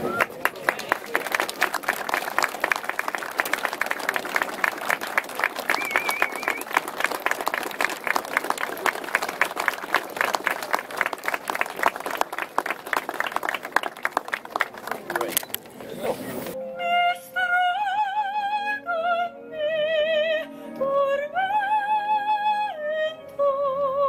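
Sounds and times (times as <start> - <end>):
small crowd applauding: 0.0 - 15.7.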